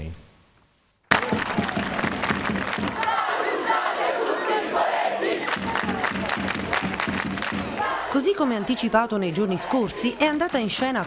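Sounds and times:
crowd clapping: 1.1s - 4.6s, 5.2s - 8.0s
crowd shouting: 1.1s - 11.0s.

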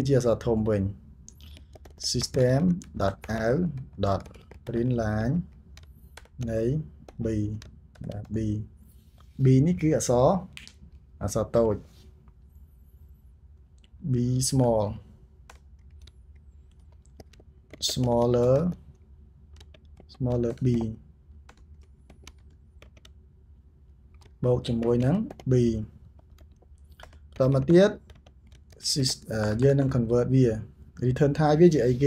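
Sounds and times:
person speaking: 0.0s - 12.0s, 13.8s - 19.0s, 19.6s - 23.1s, 24.2s - 32.0s
keyboard key clicks: 1.3s - 8.6s, 15.5s - 23.2s, 24.1s - 30.1s.

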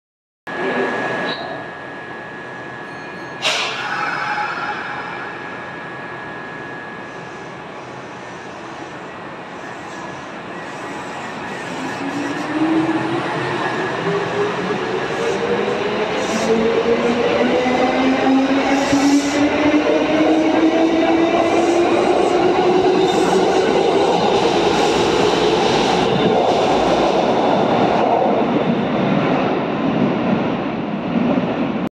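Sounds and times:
train motor and gear whine: 0.5s - 28.9s.

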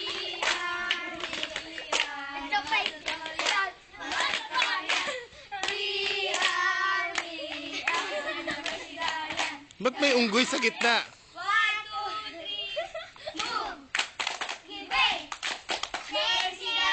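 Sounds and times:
children singing a chant: 0.0s - 10.0s, 14.6s - 15.3s, 16.1s - 16.9s.

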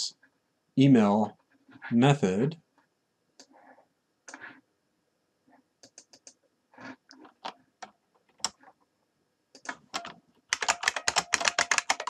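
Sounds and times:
keyboard typing: 5.8s - 8.7s, 9.6s - 12.0s.

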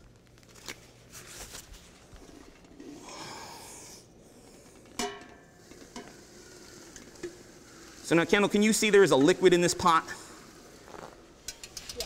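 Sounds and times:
liquid nitrogen hissing: 2.3s - 12.0s.

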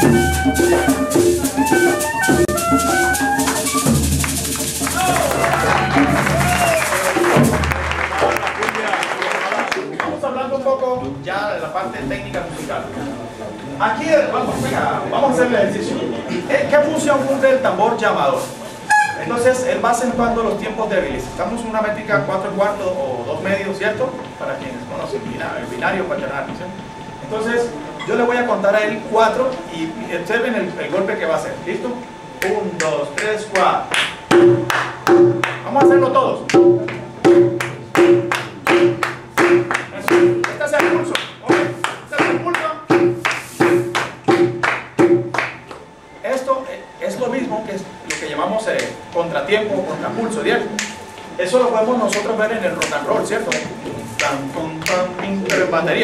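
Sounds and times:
hand drum strokes: 0.0s - 8.4s, 34.3s - 45.4s
hand claps: 0.0s - 10.2s, 32.4s - 45.9s, 48.1s - 49.0s, 50.8s - 51.0s, 52.1s - 55.7s.

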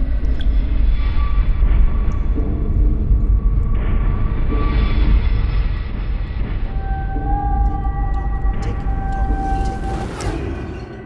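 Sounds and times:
dark low rumbling drone: 0.0s - 11.0s.

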